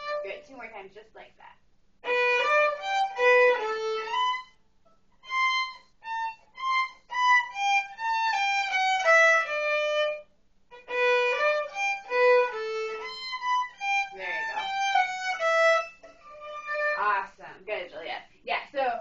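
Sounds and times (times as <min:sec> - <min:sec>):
bowed violin: 0:00.0 - 0:00.2, 0:02.0 - 0:04.6, 0:05.2 - 0:17.2
person speaking: 0:14.1 - 0:14.8, 0:17.0 - 0:19.0.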